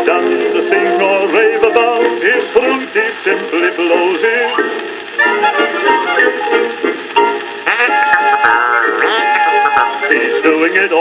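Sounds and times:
old music-hall song on record: 0.0s - 11.0s
faint record clicks: 1.2s - 5.2s.

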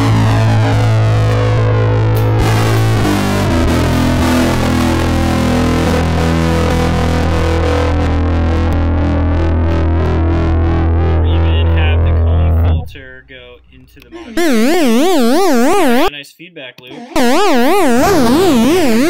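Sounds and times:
fuzzed electric guitar chord: 0.0s - 11.2s
warbling feedback tone: 14.3s - 16.1s, 17.2s - 19.0s.

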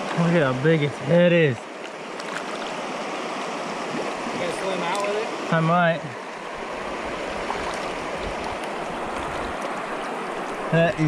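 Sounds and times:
shallow water sloshing and splashing: 0.0s - 10.8s.

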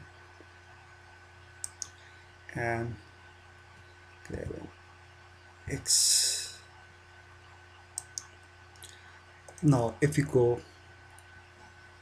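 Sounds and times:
faint electrical hum: 0.0s - 12.0s
computer control clicks: 1.6s - 2.0s, 8.0s - 8.4s, 9.5s - 9.8s.

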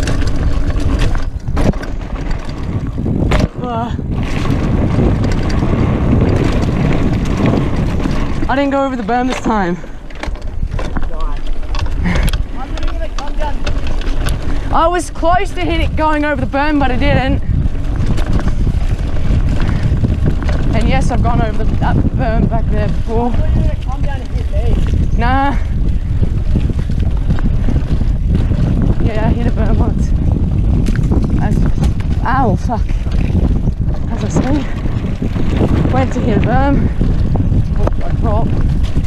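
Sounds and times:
bike rattling over bumps: 0.0s - 39.0s
bike tyres rumbling on dirt: 0.0s - 39.0s
wind buffeting microphone: 0.0s - 39.0s.

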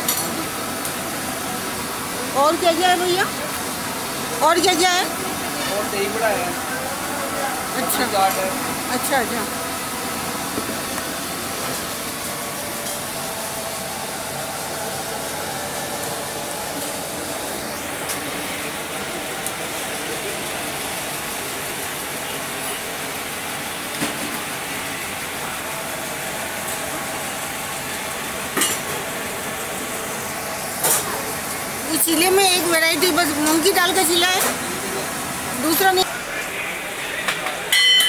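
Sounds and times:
griddle hissing: 0.0s - 37.2s.

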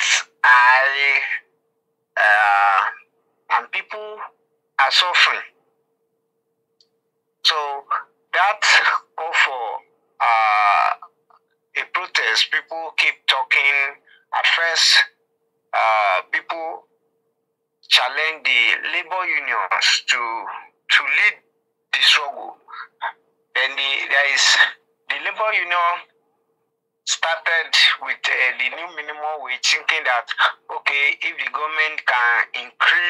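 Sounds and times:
man speaking: 0.0s - 1.5s, 2.2s - 5.6s, 7.4s - 11.2s, 11.8s - 15.2s, 15.8s - 16.9s, 17.8s - 26.1s, 27.1s - 33.0s
faint steady hum: 0.0s - 33.0s.

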